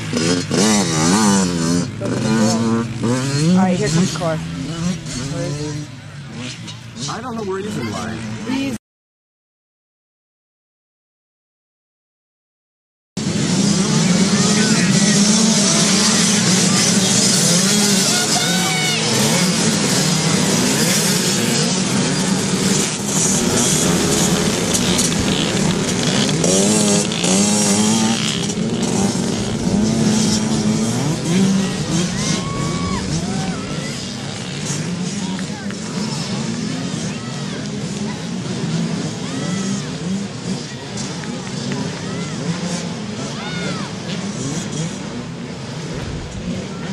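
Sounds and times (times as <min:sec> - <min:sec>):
dirt bikes revving and accelerating: 0:00.0 - 0:08.8, 0:13.2 - 0:46.9.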